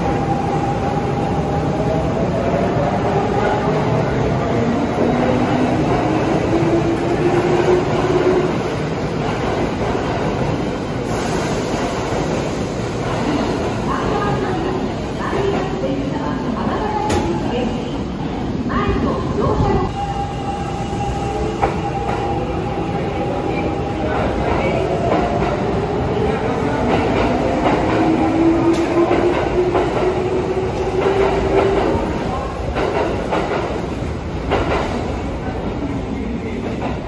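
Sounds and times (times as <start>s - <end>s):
train rumbling: 0.0s - 37.0s.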